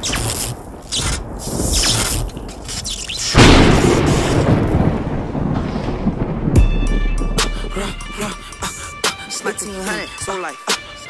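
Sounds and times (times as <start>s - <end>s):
crash: 3.2s - 6.2s
rumbling thunder: 3.4s - 6.8s
deep bass hit: 3.4s - 8.6s.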